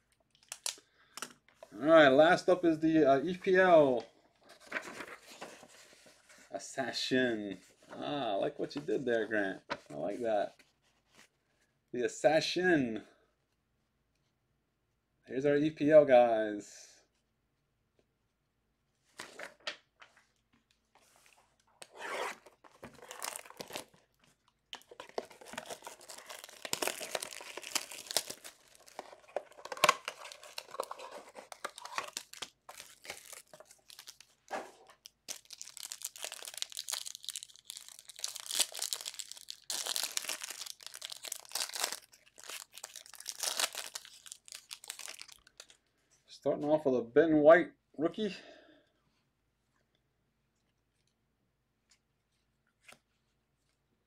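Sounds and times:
plastic wrappers tearing and crinkling: 0.0 - 0.8, 21.8 - 24.1, 24.8 - 45.8
person speaking: 1.7 - 4.1, 6.5 - 10.6.

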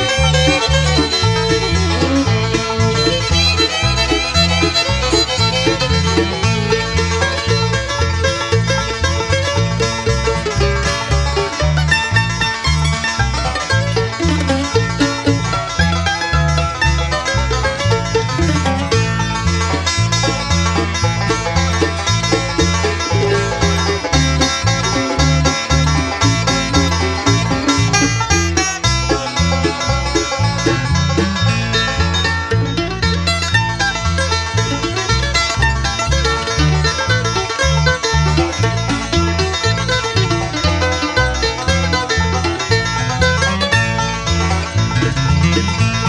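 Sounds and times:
banjo: 0.0 - 46.0
bluegrass band playing: 0.0 - 46.0
walking bass: 0.0 - 46.0.

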